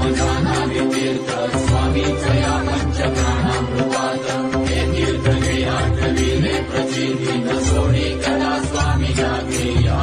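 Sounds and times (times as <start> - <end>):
rhythmic percussion: 0.0 - 10.0.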